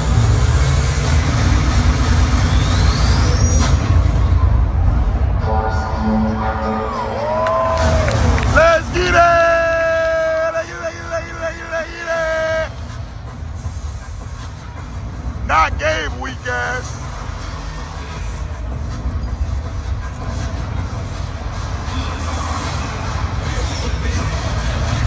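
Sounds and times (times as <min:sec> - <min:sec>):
arena music and effects: 0:00.0 - 0:25.0
crowd hum: 0:03.9 - 0:25.0.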